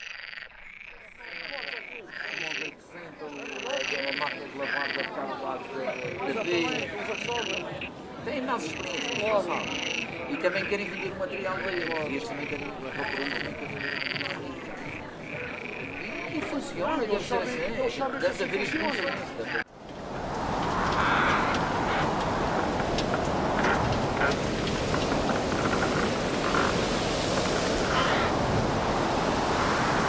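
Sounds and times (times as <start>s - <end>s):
croaking animal calls: 0.0s - 8.0s, 8.6s - 19.7s, 20.5s - 28.9s.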